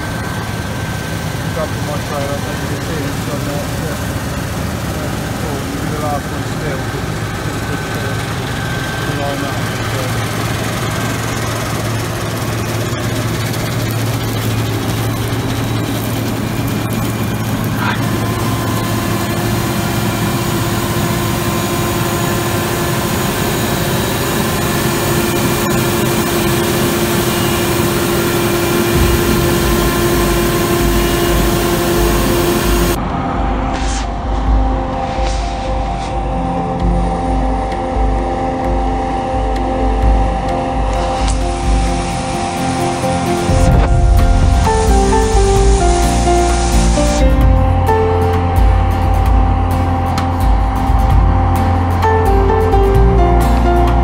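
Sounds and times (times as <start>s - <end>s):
tractor engine running: 0.0s - 33.3s, 34.2s - 54.0s
combine harvester working: 0.0s - 54.0s
grain unloading: 1.3s - 33.0s, 41.0s - 49.2s.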